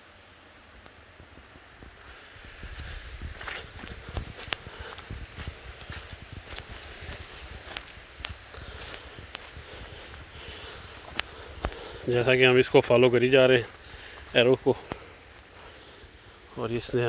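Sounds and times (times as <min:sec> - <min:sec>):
footsteps crunching on dirt path: 0:01.8 - 0:17.0.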